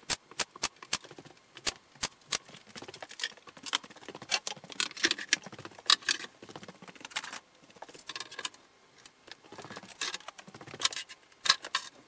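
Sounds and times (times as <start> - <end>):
tools and clamps clicking and knocking: 9.3 - 12.0.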